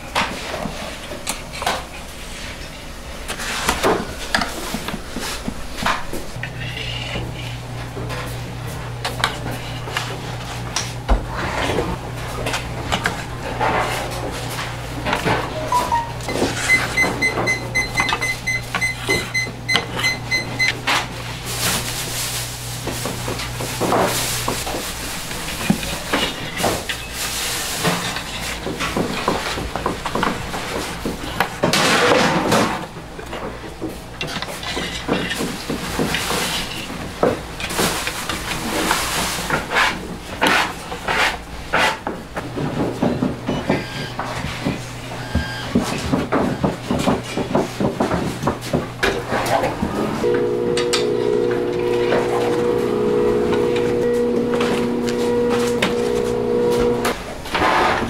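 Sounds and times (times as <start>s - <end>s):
metal peel scraping oven floor: 6.6s - 15.6s, 49.2s - 58.0s
high electronic beeps: 15.6s - 20.7s.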